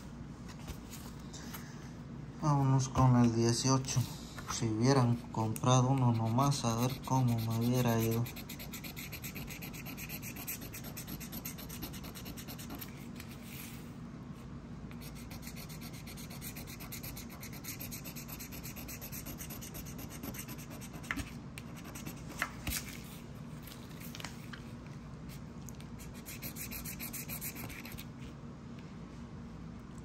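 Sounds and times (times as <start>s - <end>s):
scratch-off ticket being scratched: 5.9s - 12.9s, 15.0s - 22.2s, 26.0s - 28.0s.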